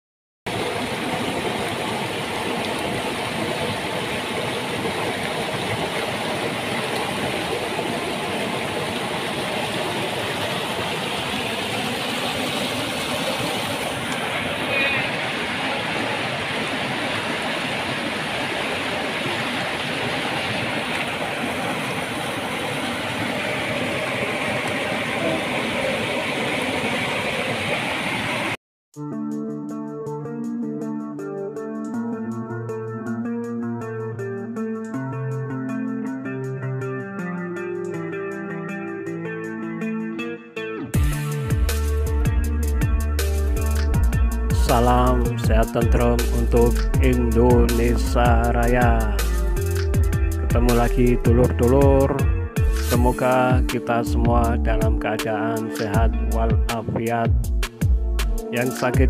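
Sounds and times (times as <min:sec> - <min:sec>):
water rushing over rocks: 0:00.5 - 0:28.6.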